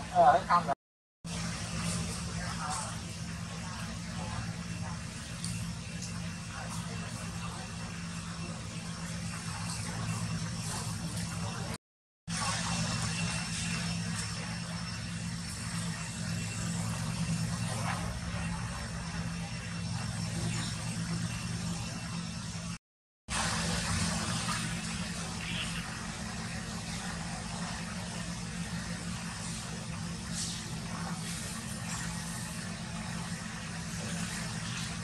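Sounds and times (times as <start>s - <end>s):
outdoor background noise: 0.0s - 35.0s.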